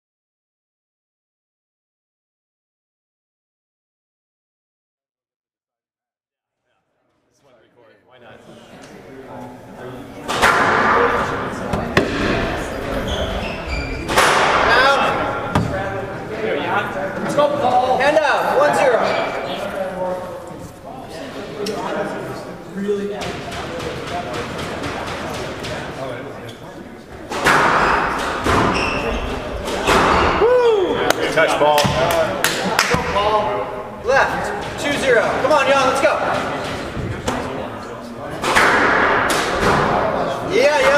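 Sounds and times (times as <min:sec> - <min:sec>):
squash ball knocks: 0:10.3 - 0:12.6
shoes squeaking on wooden floor: 0:12.6 - 0:14.3, 0:27.8 - 0:29.5.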